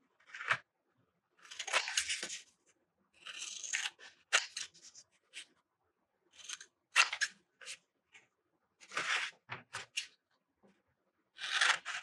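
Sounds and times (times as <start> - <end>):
scissors cutting paper: 1.4 - 2.4, 3.2 - 5.5, 6.4 - 7.8, 11.4 - 12.0.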